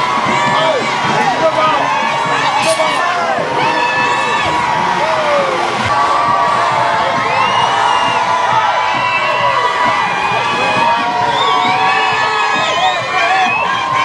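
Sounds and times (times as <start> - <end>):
crowd shouting and cheering: 0.0 - 14.0.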